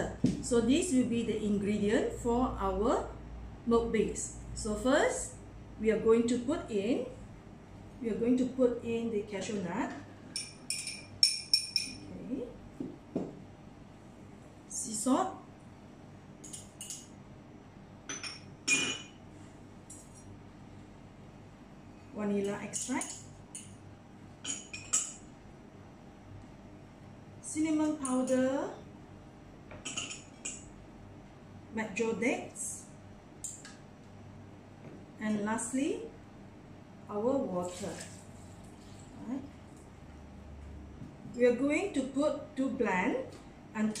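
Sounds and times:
metal spoon clinking on bowls: 10.3 - 12.1, 16.4 - 17.2, 18.1 - 19.2, 22.4 - 23.8, 24.4 - 25.3, 27.8 - 28.5, 29.7 - 30.7.

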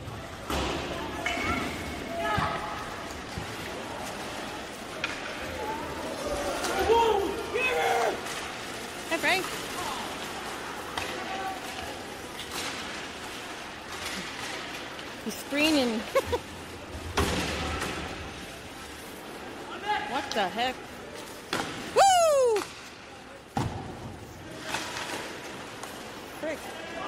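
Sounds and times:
rink crowd hubbub: 0.0 - 27.0
people shouting: 5.7 - 8.3.

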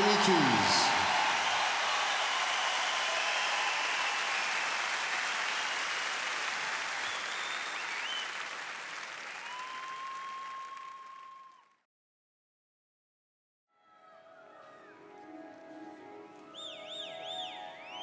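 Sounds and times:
whistles from crowd: 0.0 - 8.6, 9.2 - 11.8, 16.6 - 18.0
crowd applauding and cheering: 0.0 - 11.8.

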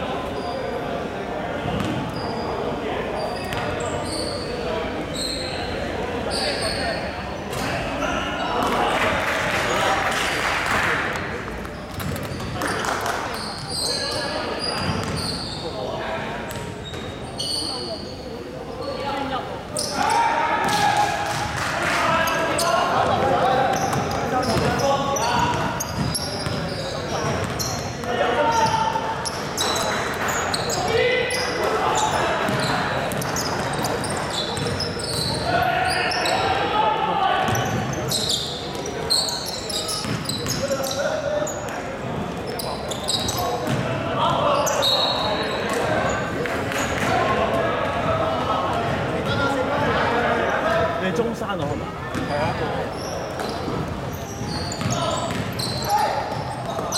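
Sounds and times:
people talking and calling out: 0.0 - 56.9.

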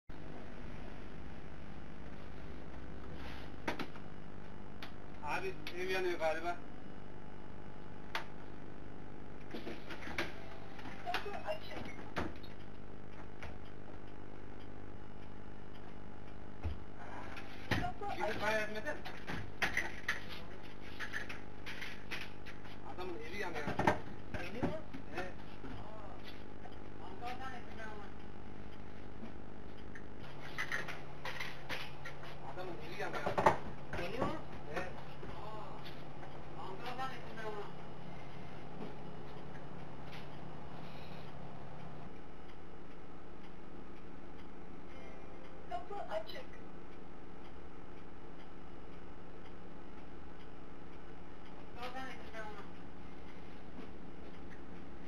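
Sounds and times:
people talking: 5.2 - 6.6, 11.0 - 12.0, 17.2 - 19.1, 22.9 - 26.4, 32.5 - 35.9, 36.6 - 37.8, 45.7 - 46.6, 51.8 - 52.7.

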